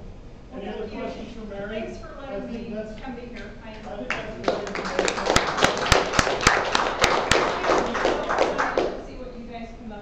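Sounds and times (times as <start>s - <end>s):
audience clapping: 4.1s - 9.0s
strong close claps: 4.1s - 9.0s.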